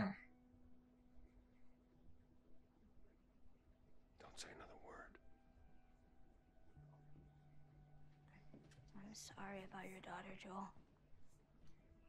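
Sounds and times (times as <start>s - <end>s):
man whispering: 4.2s - 5.2s.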